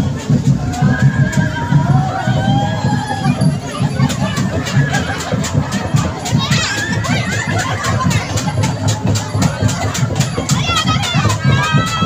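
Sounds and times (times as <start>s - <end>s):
low drum beat: 0.0s - 12.0s.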